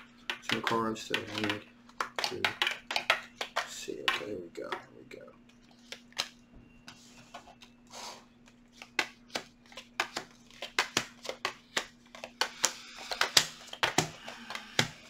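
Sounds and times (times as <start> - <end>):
cards shuffling and snapping: 0.0 - 4.3, 8.5 - 15.0
faint steady hum: 0.0 - 15.0.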